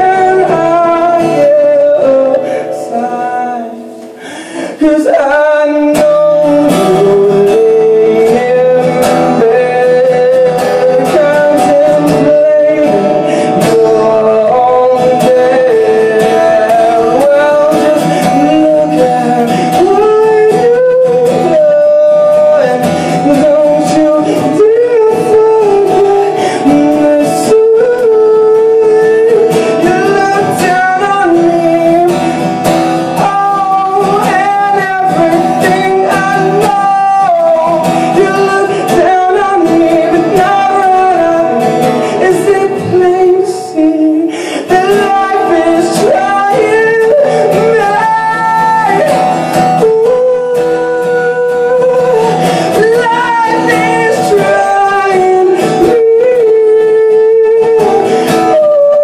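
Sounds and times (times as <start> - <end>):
acoustic guitar strumming: 0.0 - 59.0
man singing: 0.0 - 59.0.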